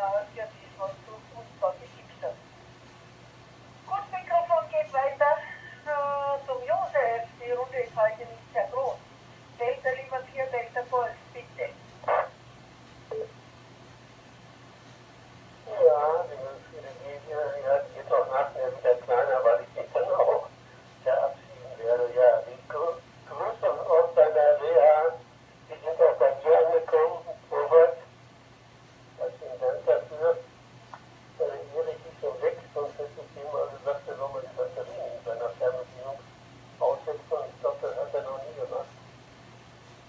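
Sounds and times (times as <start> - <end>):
steady low hum: 0.0 - 40.0
speech over radio loudspeaker: 3.9 - 9.0, 9.6 - 12.4, 15.6 - 28.1, 29.2 - 30.5, 31.4 - 36.2, 36.8 - 39.0.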